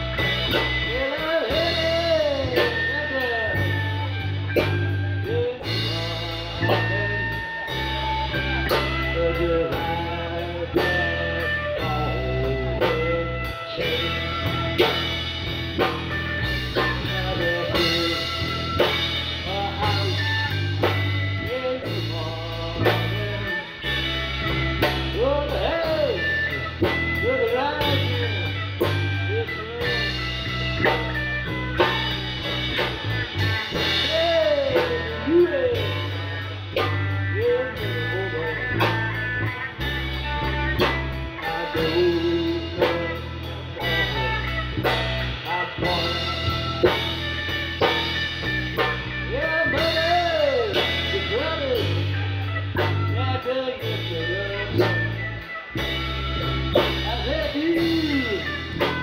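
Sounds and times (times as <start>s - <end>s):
drum kit steady beat: 0.0s - 59.0s
electric bass low notes: 0.0s - 59.0s
electric guitar bending notes: 0.0s - 59.0s.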